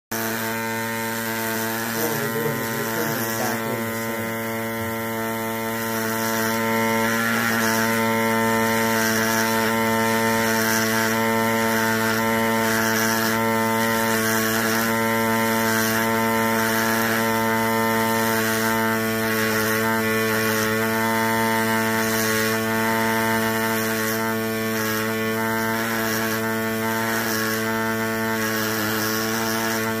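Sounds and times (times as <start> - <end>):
air scribe buzzing: 0.1 - 30.0.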